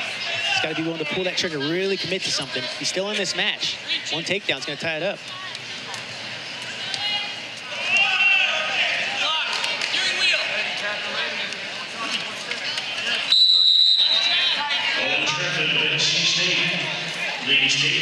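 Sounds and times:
high whistle tone: 0:13.3 - 0:14.3.

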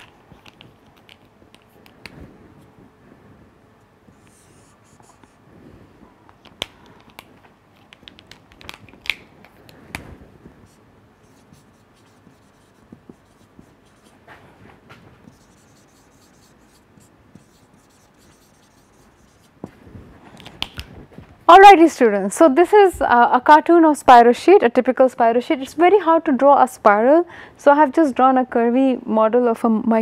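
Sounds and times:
marker scratching on whiteboard: 0:04.1 - 0:05.4, 0:10.6 - 0:14.4, 0:15.2 - 0:19.6
marker tapping on board: 0:11.5 - 0:14.1.

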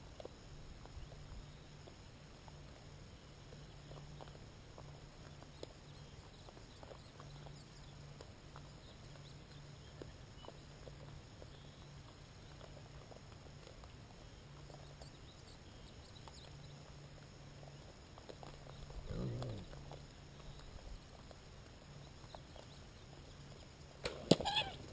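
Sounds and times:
hogs feeding clicks and rustles: 0:00.0 - 0:24.9
hog call: 0:24.3 - 0:24.9.

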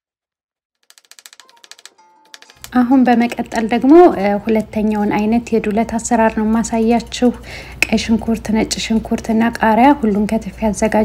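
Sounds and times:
woman speaking: 0:02.7 - 0:11.0.

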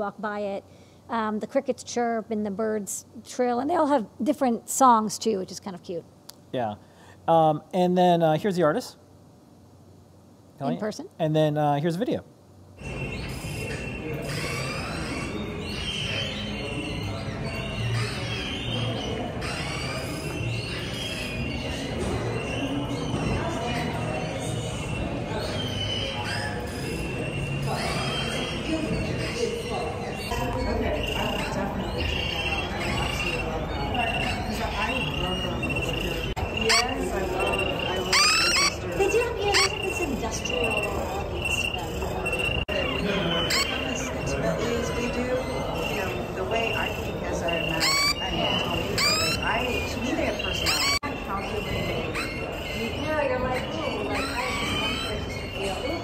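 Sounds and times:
synthesized bird trills and chirps: 0:12.8 - 0:56.0.

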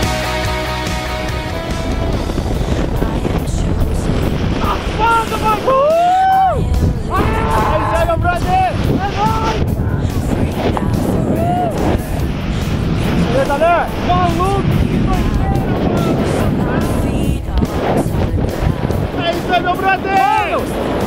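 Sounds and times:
wind rushing over microphone: 0:00.0 - 0:21.0
person yelling excitedly: 0:04.7 - 0:09.6, 0:19.6 - 0:20.6.

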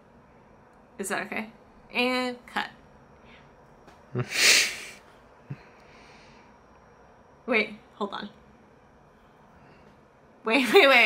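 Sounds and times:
breathy nasal burst of air: 0:04.2 - 0:05.0.

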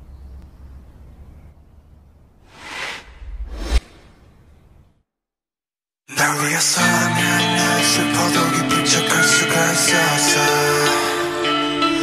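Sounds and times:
cinematic whoosh: 0:02.4 - 0:04.9
deep rumble: 0:02.5 - 0:04.9
low hum: 0:02.5 - 0:05.0.

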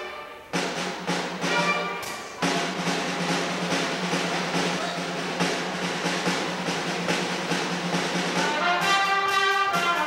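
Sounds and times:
band drums playing steady beat: 0:00.0 - 0:10.0.

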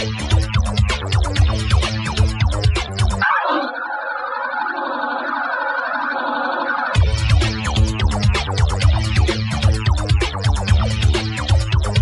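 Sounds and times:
electronic dance music: 0:00.0 - 0:12.0
synth with repeating sweep: 0:00.0 - 0:12.0.

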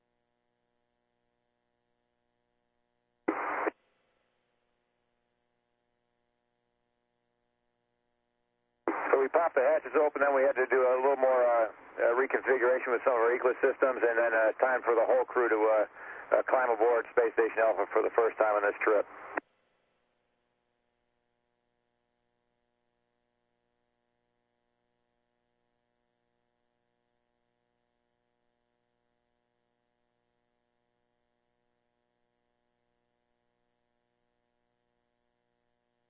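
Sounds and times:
faint steady hum: 0:03.2 - 0:03.8, 0:05.4 - 0:19.4
radio static burst: 0:03.3 - 0:03.7, 0:08.9 - 0:19.4
man speaking: 0:08.9 - 0:19.0.

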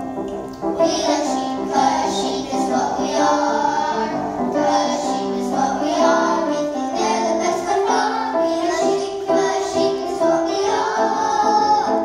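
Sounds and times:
children singing together: 0:00.7 - 0:12.0.

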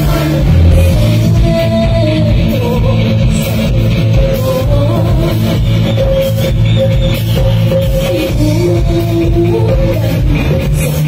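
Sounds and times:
live amplified band playing: 0:00.0 - 0:11.0.

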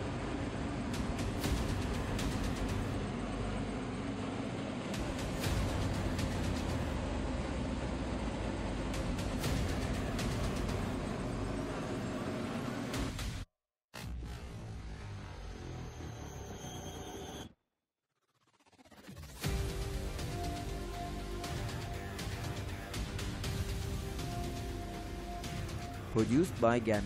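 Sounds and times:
background music: 0:00.9 - 0:03.1, 0:04.9 - 0:11.7, 0:19.4 - 0:27.0.

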